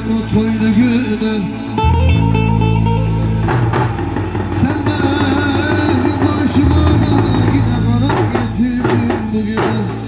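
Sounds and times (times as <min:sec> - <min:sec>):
amplified folk dance music: 0:00.0 - 0:10.0
bass drums struck with sticks: 0:03.4 - 0:10.0.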